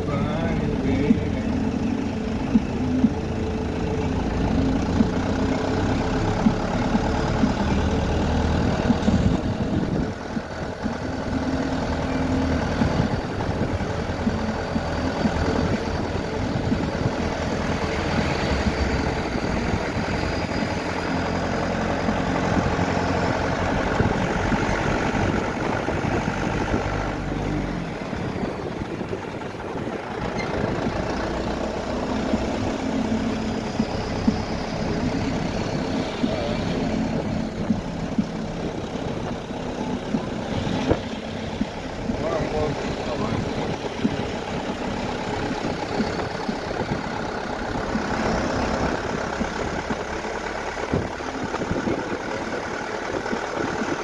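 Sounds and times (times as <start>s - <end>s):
car engine running: 0.0s - 54.0s
tyre and road noise: 0.0s - 54.0s.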